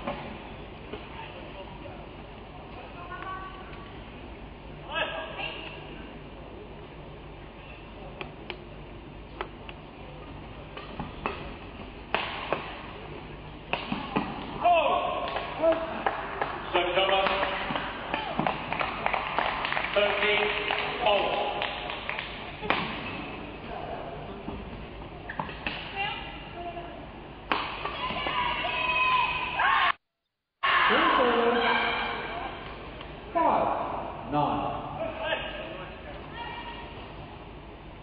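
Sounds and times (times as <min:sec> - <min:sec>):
racket hitting shuttlecock: 0:10.8 - 0:12.9, 0:13.7 - 0:14.6, 0:22.6 - 0:23.4, 0:27.5 - 0:28.4.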